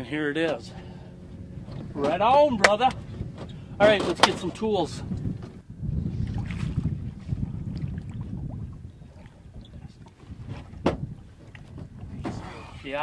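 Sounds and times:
wind rumble on microphone: 0:00.0 - 0:13.0
microphone handling knocks: 0:10.3 - 0:12.4.

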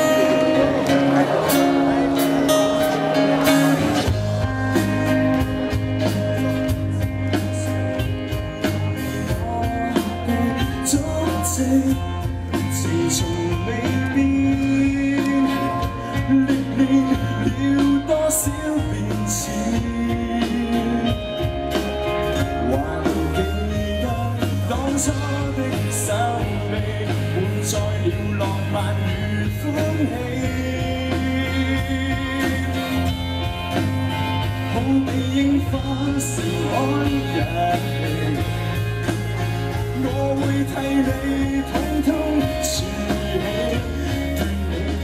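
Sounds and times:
live pop-rock band playing: 0:00.0 - 0:45.0
strummed acoustic guitar: 0:00.0 - 0:45.0.

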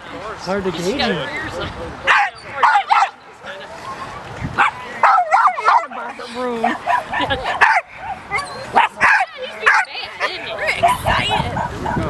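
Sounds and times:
dog yipping: 0:04.6 - 0:12.0
dog whining: 0:06.9 - 0:08.8.

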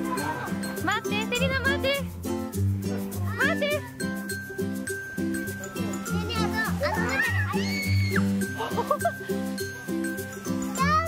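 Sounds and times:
music with repeating beat: 0:00.0 - 0:11.0
child calling out: 0:06.1 - 0:08.3.

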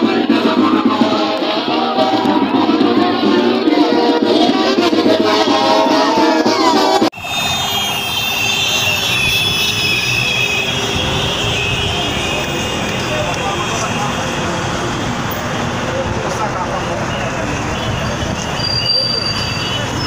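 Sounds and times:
many voices: 0:00.0 - 0:07.2, 0:07.9 - 0:20.0
motorcycle engines: 0:00.0 - 0:20.0
traffic: 0:00.0 - 0:20.0.

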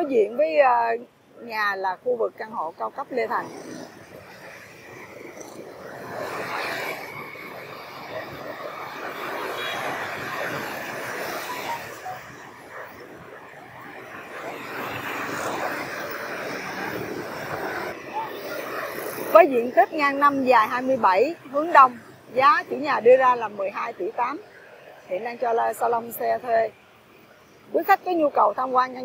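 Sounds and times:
motorbikes and scooters passing: 0:00.0 - 0:29.0
street traffic: 0:00.0 - 0:29.0.

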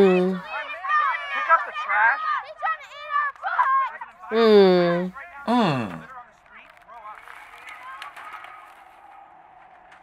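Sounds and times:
faint voice: 0:00.0 - 0:00.6, 0:04.3 - 0:06.1.

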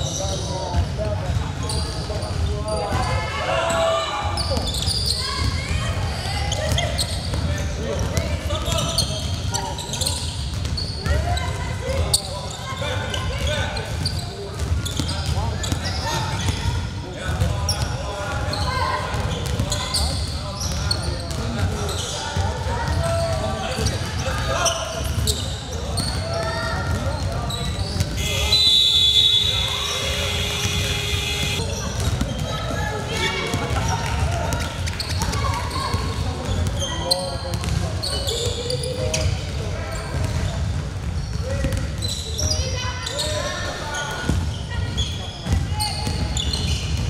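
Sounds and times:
players' footwork: 0:18.4 - 0:42.2
voices calling out: 0:21.8 - 0:37.1
basketball dribbling: 0:26.9 - 0:32.4.

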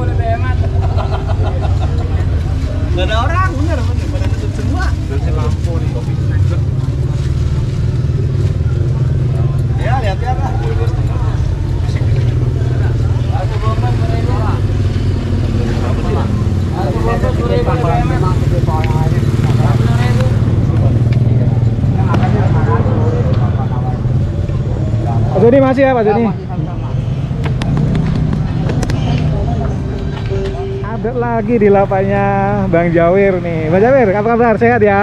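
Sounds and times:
low engine rumble: 0:00.0 - 0:35.0.

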